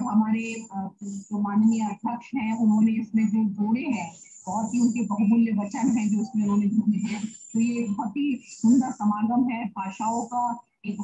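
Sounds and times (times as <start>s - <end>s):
woman speaking over a video call: 0.0s - 11.0s.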